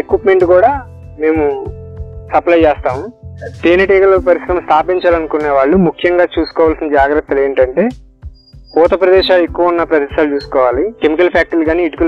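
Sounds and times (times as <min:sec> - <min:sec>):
man talking: 0:00.0 - 0:01.7, 0:02.3 - 0:08.0, 0:08.8 - 0:12.0.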